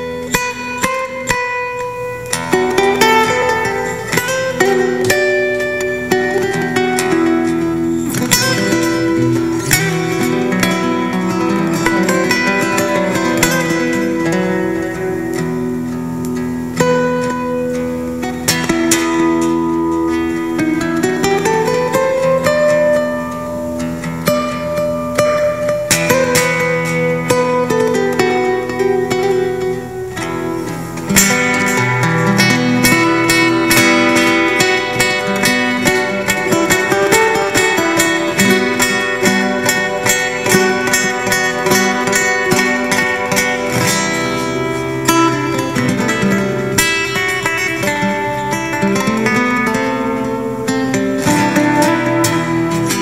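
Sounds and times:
instrumental guitar music: 0:00.0 - 0:53.0.

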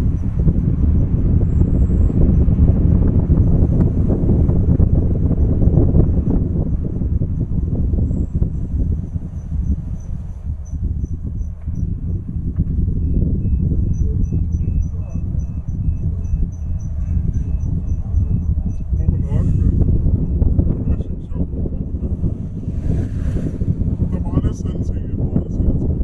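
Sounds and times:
car driving low rumble: 0:00.0 - 0:26.0
insect chirping: 0:07.4 - 0:18.8.

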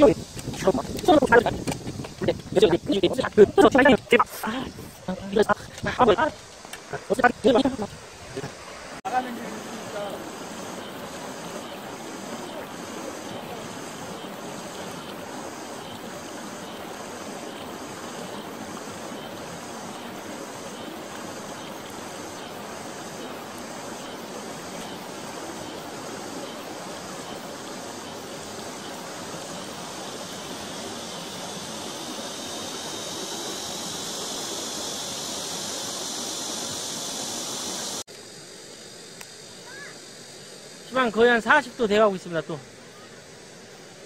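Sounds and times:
stream rushing over rocks: 0:00.0 - 0:38.1.

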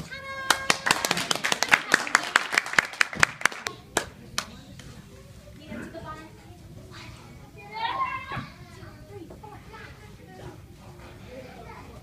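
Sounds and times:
children's voices: 0:05.6 - 0:12.0.

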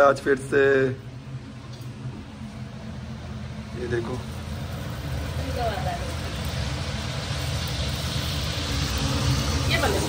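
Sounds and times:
steady low hum: 0:00.0 - 0:10.0
batter sizzling in hot oil: 0:03.1 - 0:10.0.

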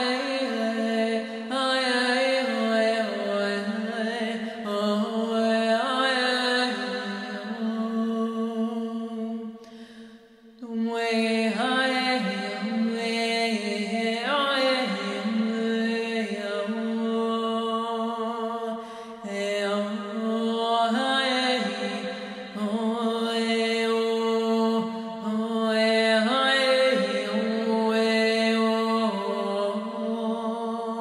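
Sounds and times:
breaths: 0:01.2 - 0:01.5, 0:04.3 - 0:04.7, 0:09.5 - 0:10.6, 0:18.7 - 0:19.3, 0:22.0 - 0:22.6.

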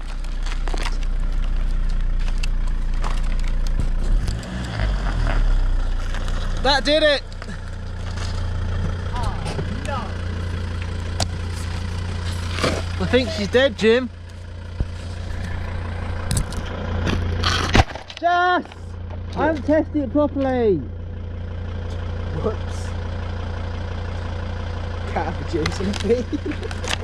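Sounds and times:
car engine idling: 0:00.0 - 0:27.0.

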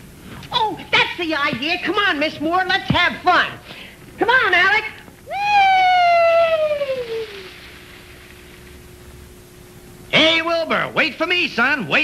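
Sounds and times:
faint hum and hiss: 0:00.0 - 0:12.0
person yelling: 0:05.3 - 0:07.4.

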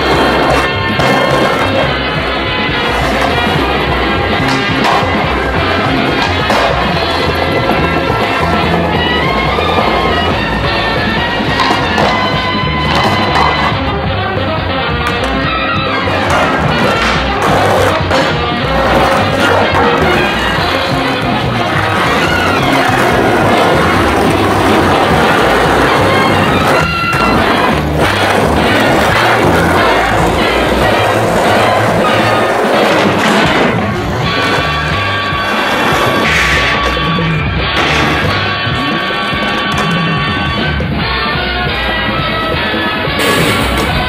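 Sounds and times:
music playing: 0:00.0 - 0:44.0
skateboard clacks: 0:00.0 - 0:44.0
skateboard rolling: 0:00.0 - 0:44.0.

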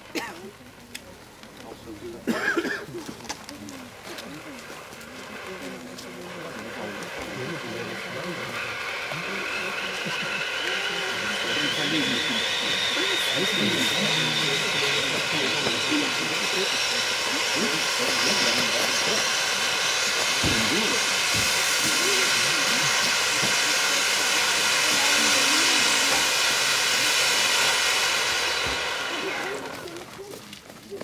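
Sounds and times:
firework fountain hissing sparks: 0:00.0 - 0:31.0.

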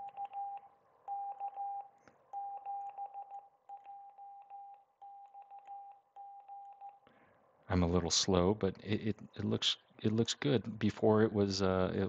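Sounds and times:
morse code beeps: 0:00.0 - 0:07.0.

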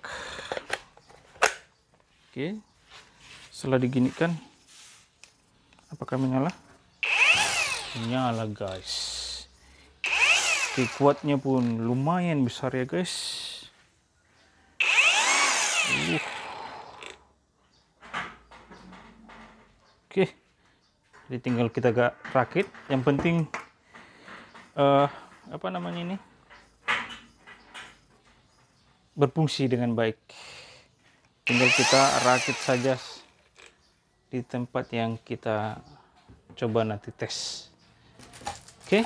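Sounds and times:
grass trimmer motor whining: 0:07.0 - 0:09.2, 0:10.0 - 0:11.9, 0:14.8 - 0:17.3, 0:31.4 - 0:33.4.

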